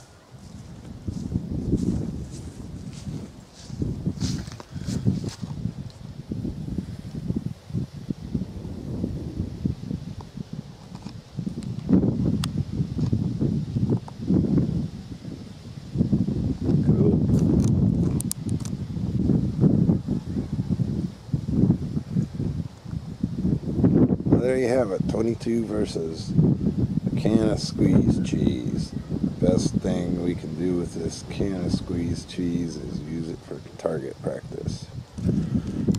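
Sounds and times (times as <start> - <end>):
grass rustling: 0.0 - 35.9
wind buffeting microphone: 0.0 - 35.9.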